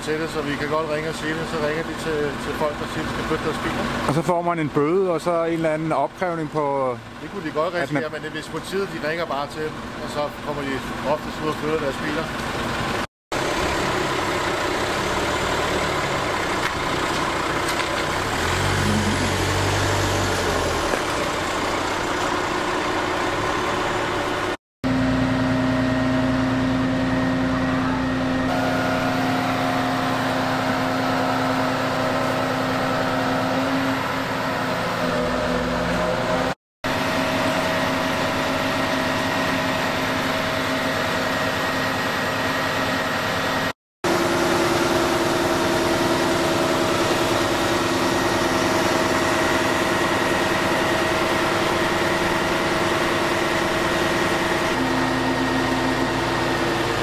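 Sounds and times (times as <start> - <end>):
crane diesel engine running: 0.0 - 57.0.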